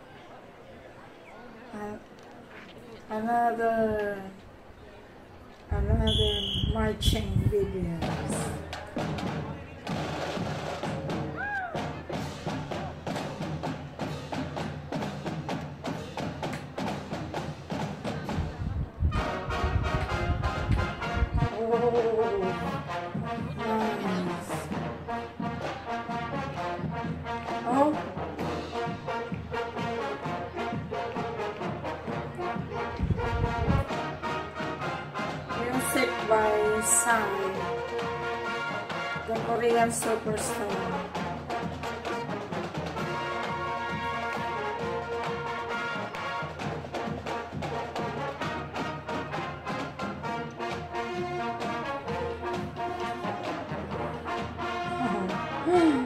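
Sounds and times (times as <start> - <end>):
brass marching band playing: 5.8 - 56.0
steady drumbeats: 6.1 - 56.0.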